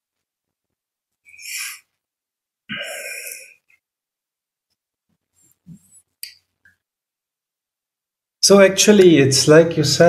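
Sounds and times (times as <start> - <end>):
breathy exhalations: 1.3 - 2.0, 2.7 - 3.8.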